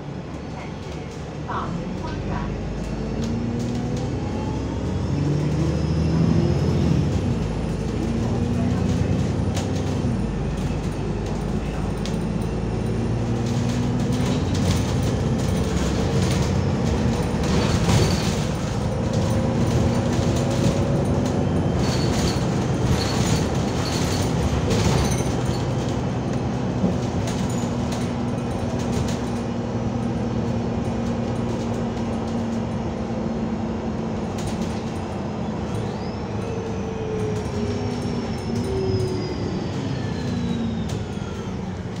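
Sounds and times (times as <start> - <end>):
bus engine drone: 0.0 - 42.0
road rumble: 0.0 - 42.0.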